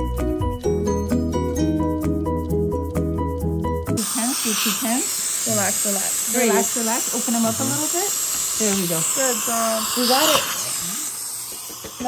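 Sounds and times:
background music with steady beat: 0.0 - 4.0
dental suction tube hissing: 3.9 - 12.0.

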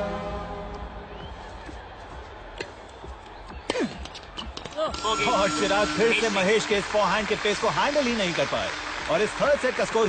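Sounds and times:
background music steady note: 0.0 - 1.9, 4.9 - 10.0.

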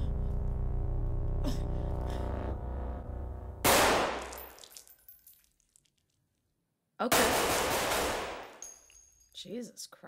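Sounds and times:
low droning score: 0.0 - 4.3
loud gunshot: 3.6 - 4.3.

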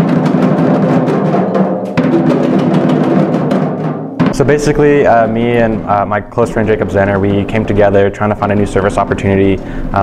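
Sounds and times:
snare drum: 0.0 - 9.8
hand drums playing: 0.0 - 10.0.

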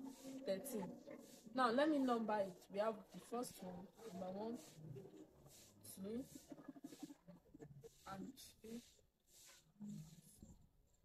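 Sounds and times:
marker strokes on whiteboard: 0.0 - 10.7.

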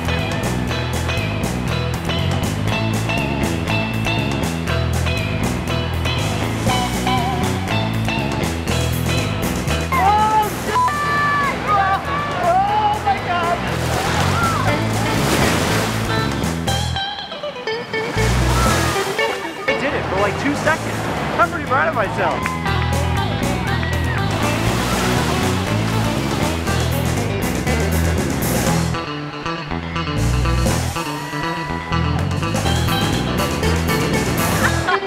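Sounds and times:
background music with steady beat: 0.0 - 35.0.

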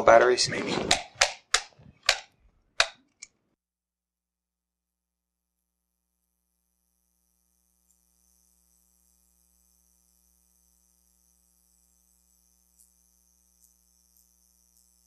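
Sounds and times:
microphone handling clicks: 0.2 - 3.3.

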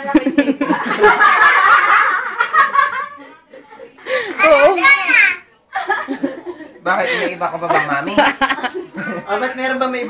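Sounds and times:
people laughing loudly: 0.1 - 4.4, 5.7 - 9.6.

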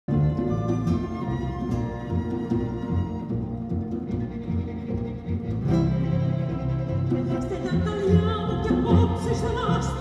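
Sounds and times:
bowed strings: 0.1 - 10.0
low bass line: 0.1 - 10.0
plucked strings: 0.1 - 10.0.

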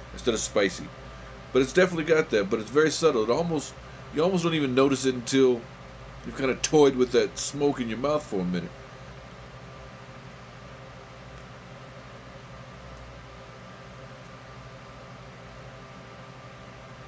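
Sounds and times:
room fan running: 0.0 - 17.0.

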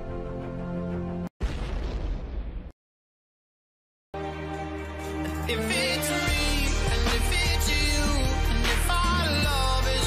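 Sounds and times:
explosion-like blast sound effect: 1.4 - 2.8.

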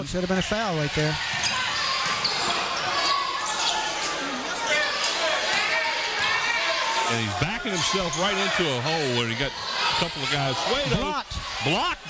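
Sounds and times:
crowd chatter and shouts: 0.0 - 12.0.

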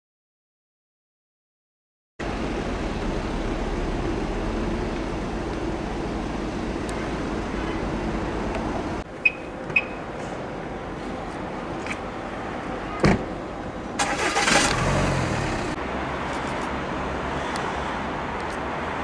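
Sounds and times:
street background: 2.2 - 19.0.

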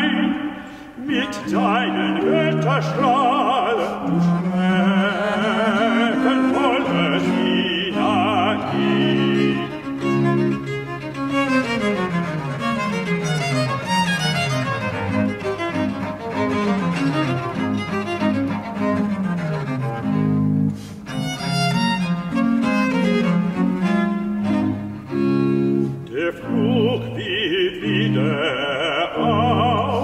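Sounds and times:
baroque chamber ensemble playing: 0.0 - 30.0.

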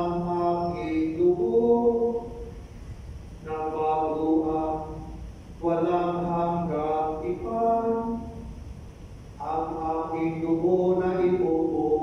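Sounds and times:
unaccompanied chant singing: 0.0 - 2.5, 3.4 - 8.5, 9.4 - 12.0.

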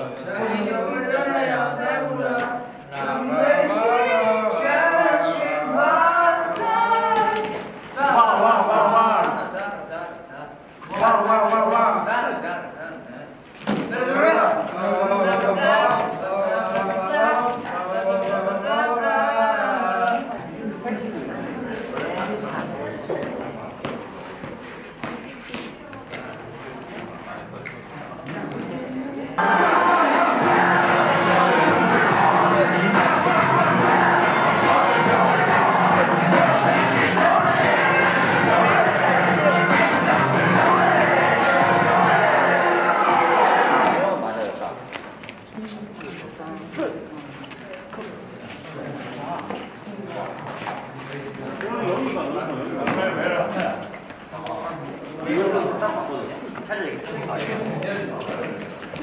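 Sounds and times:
people talking indistinctly: 0.0 - 59.0.

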